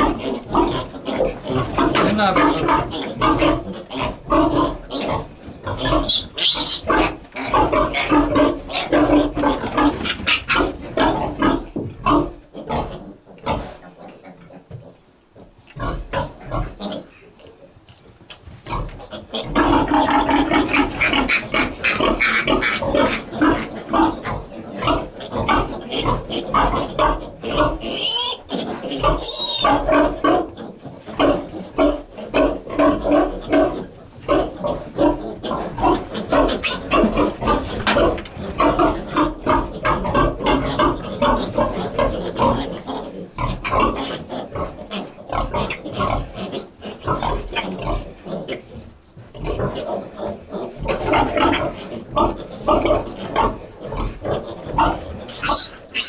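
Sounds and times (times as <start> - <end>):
piglets squealing and grunting: 0.0 - 14.7, 15.8 - 17.7, 18.6 - 48.8, 49.4 - 56.0.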